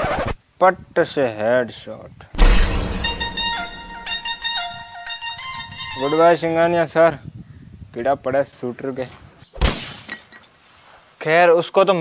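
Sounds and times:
crash with shattering tail: 0:02.4 - 0:04.8.

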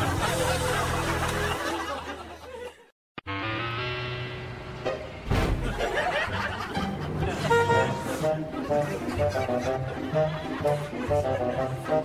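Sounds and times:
light background music: 0:06.1 - 0:12.0
car horn toot: 0:07.4 - 0:08.1.

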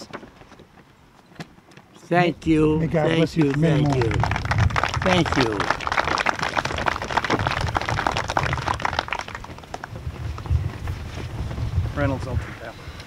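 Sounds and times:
audience applauding: 0:03.0 - 0:10.5.

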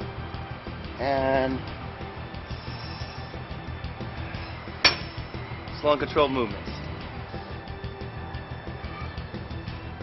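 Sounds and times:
background music with steady beat: 0:00.0 - 0:10.0
metallic clank of weight stack: 0:04.8 - 0:05.2.

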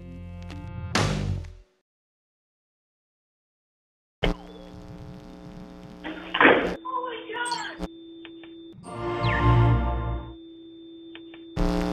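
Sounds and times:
faint steady tone: 0:10.0 - 0:11.9.

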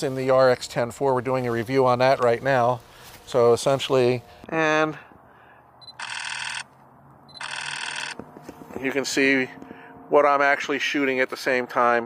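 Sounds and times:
electronic telephone ring: 0:05.8 - 0:06.7, 0:07.3 - 0:08.2.

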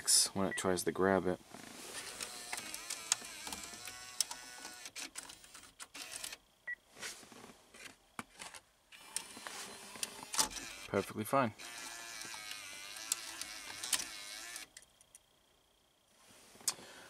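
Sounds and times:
cd changer whirring and clicking: 0:02.0 - 0:06.4, 0:09.0 - 0:11.0, 0:11.6 - 0:14.8.

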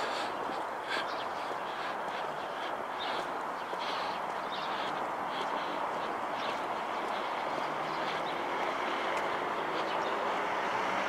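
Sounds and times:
vehicles hissing on road: 0:00.0 - 0:11.0.

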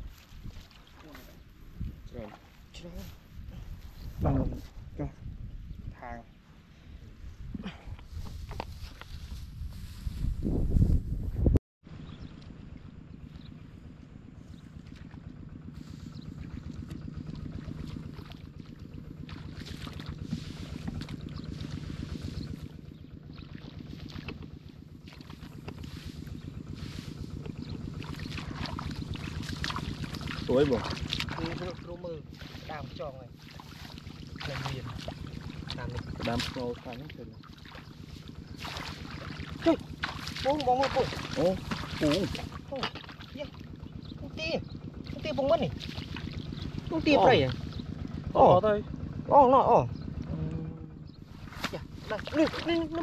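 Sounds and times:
footsteps splashing through water: 0:00.0 - 0:01.4, 0:14.6 - 0:15.3, 0:16.2 - 0:26.5, 0:27.1 - 0:43.8, 0:45.0 - 0:48.0, 0:51.4 - 0:53.0
steady low hum: 0:00.0 - 0:53.0.

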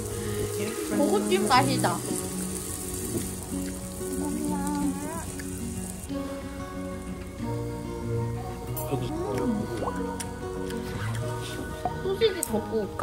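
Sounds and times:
meat sizzling on a grill: 0:00.0 - 0:09.4
background music: 0:00.0 - 0:13.0.

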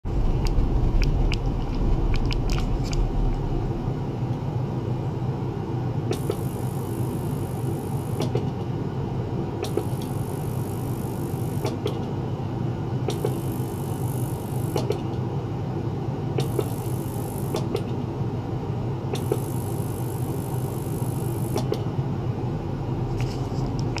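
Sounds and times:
ultrasonic cleaner buzzing: 0:06.1 - 0:08.4, 0:09.6 - 0:11.9, 0:13.1 - 0:15.0, 0:16.4 - 0:17.8, 0:19.1 - 0:21.8.

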